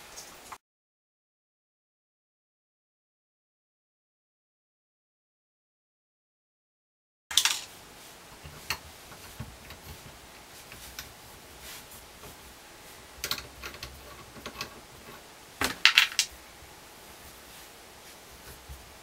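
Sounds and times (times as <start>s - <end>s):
metal rattle: 13.1s - 16.3s
metal pipe fittings clinking: 13.2s - 16.3s.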